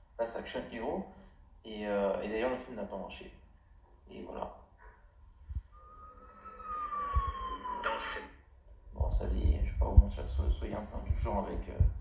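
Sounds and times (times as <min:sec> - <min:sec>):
siren-like tone gliding downward: 0:05.5 - 0:08.5.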